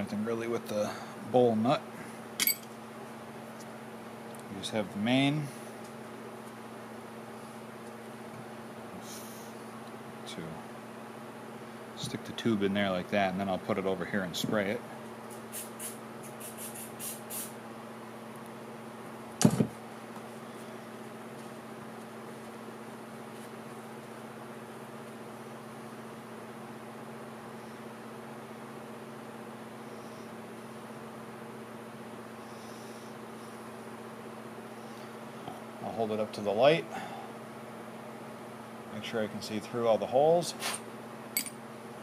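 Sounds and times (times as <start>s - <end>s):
low mechanical hum: 0.0s - 42.0s.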